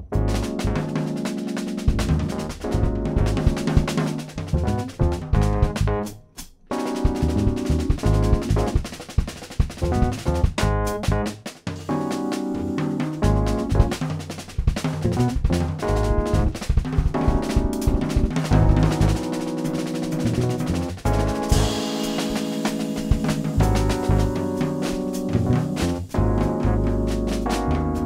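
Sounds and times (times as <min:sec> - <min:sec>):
jazz trio playing bebop: 0:00.0 - 0:28.0.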